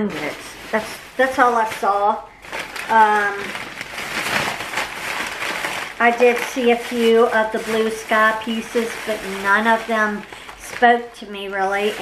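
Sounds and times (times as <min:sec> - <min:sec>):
packaging rustling: 0:00.0 - 0:12.0.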